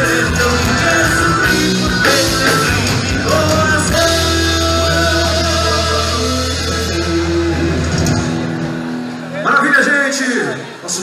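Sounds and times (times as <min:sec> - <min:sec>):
bass: 0:00.0 - 0:09.6
live band holding chord: 0:00.0 - 0:11.0.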